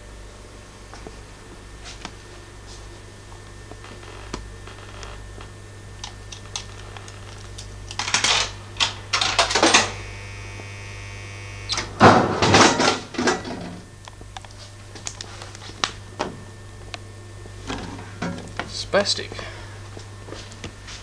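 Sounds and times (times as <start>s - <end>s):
electrical hum: 0.0s - 21.0s.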